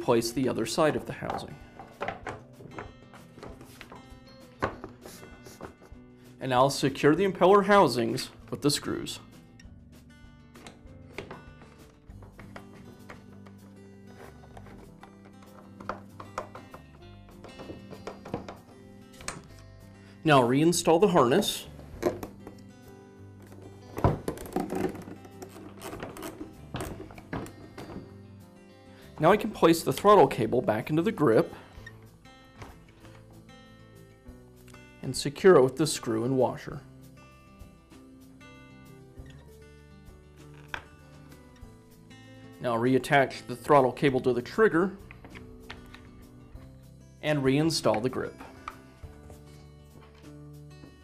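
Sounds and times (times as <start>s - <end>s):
soft background music: 0.0s - 51.0s
plastic parts knocking together: 1.2s - 3.5s, 14.5s - 19.5s, 23.5s - 28.1s.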